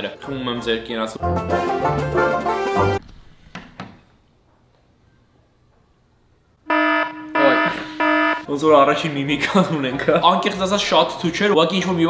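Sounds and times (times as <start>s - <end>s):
harsh buzzer: 6.7s - 8.5s.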